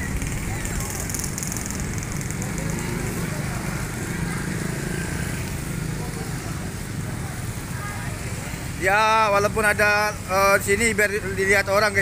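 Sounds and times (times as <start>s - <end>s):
motor scooter engine idling: 0.0s - 6.6s
street noise: 0.0s - 12.0s.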